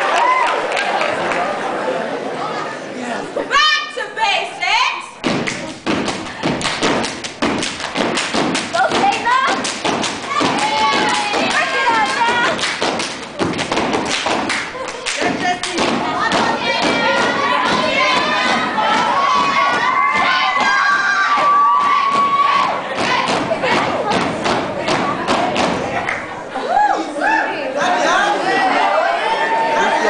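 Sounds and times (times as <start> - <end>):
people clapping: 0.0 - 1.7, 5.2 - 26.4
people shouting and cheering: 0.0 - 30.0
stomping on wooden stage: 5.2 - 26.1.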